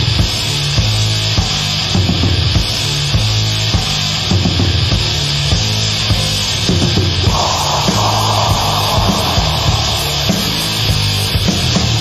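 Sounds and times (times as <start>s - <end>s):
distorted guitars and bass droning: 7.2s - 11.5s.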